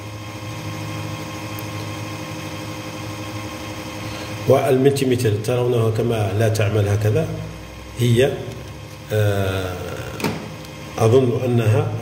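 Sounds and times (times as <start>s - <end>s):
computer power supply humming: 0.0s - 12.0s.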